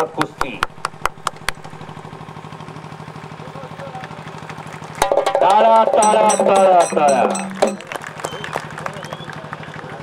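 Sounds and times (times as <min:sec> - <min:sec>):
engine humming with rapid pulse: 0:00.0 - 0:10.0
sharp knocks: 0:05.0 - 0:08.0.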